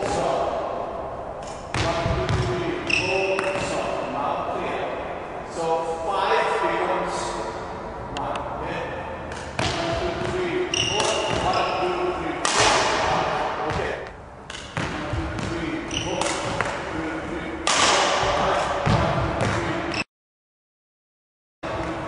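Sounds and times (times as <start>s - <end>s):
shoes squeaking on court floor: 2.3s - 3.8s, 9.4s - 12.1s, 13.7s - 16.8s
racket hitting shuttlecock: 9.3s - 11.8s, 12.4s - 16.8s, 17.6s - 19.7s.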